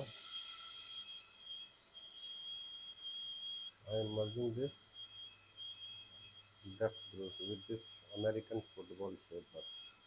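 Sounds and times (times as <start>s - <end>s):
dental drill whine: 0.0s - 10.0s.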